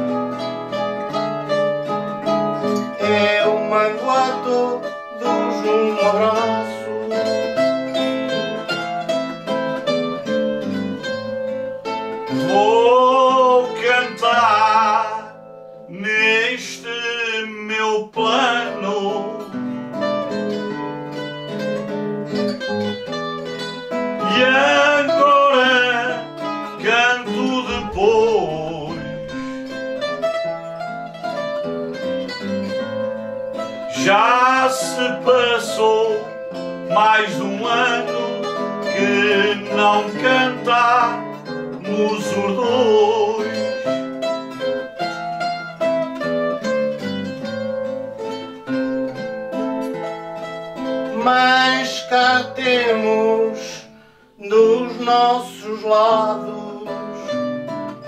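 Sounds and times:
acoustic guitar: 0.0s - 58.0s
plucked string instrument: 0.0s - 58.0s
man singing: 2.8s - 9.0s, 12.3s - 20.0s, 23.9s - 30.2s, 33.7s - 44.0s, 50.8s - 57.7s.

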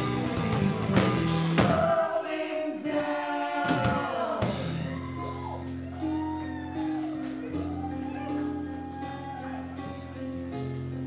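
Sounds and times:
live band playing: 0.0s - 2.2s, 3.0s - 11.0s
person singing: 1.6s - 5.4s.

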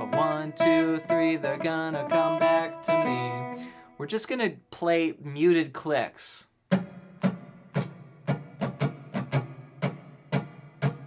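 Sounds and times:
muted acoustic guitar strumming: 0.0s - 4.1s, 6.7s - 11.0s.

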